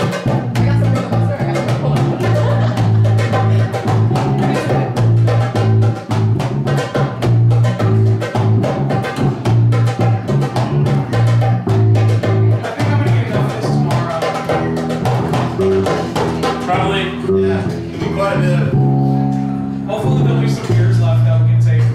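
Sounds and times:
hand drums fast rhythm: 0:00.0 - 0:18.3
plucked double bass: 0:00.0 - 0:21.9.

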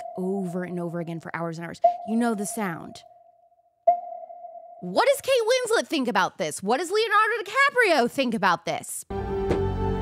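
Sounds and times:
sonar ping: 0:00.0 - 0:05.0.

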